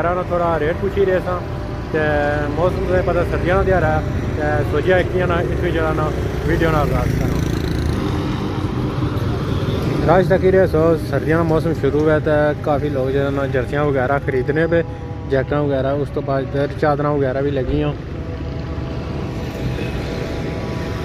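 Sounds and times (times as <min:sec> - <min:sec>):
man talking: 0:00.0 - 0:07.6, 0:10.0 - 0:18.0
motorcycles passing: 0:00.0 - 0:21.0
street traffic rumble: 0:00.0 - 0:21.0.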